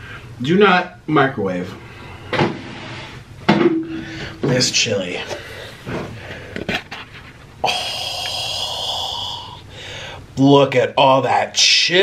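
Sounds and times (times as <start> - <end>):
breathy exhale: 3.9 - 4.4, 7.6 - 10.2.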